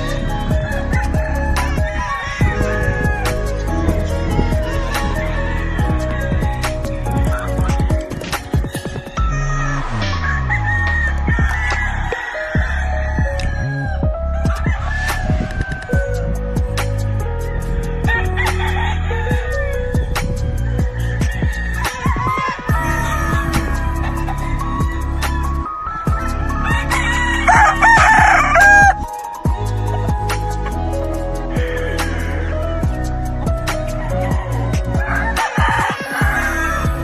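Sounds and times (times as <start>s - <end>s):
rooster crowing: 0.0s - 7.8s, 8.4s - 16.4s, 17.2s - 30.8s, 31.4s - 37.0s
background music with beat: 0.0s - 37.0s.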